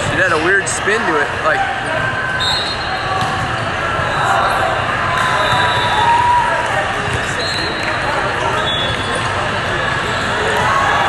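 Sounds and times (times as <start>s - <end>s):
ball bouncing: 3.1s - 3.7s.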